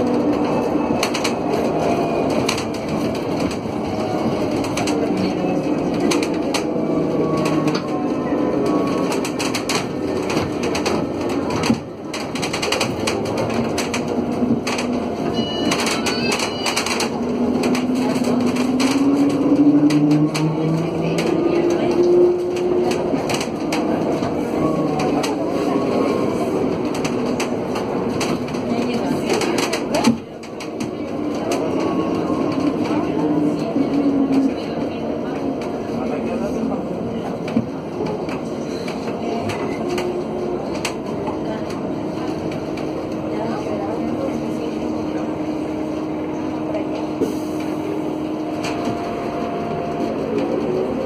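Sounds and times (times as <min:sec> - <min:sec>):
road noise: 0:00.0 - 0:51.0.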